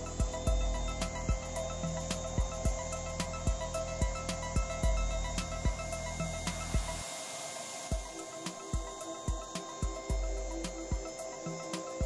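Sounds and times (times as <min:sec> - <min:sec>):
background music with a beat: 0:00.0 - 0:12.0.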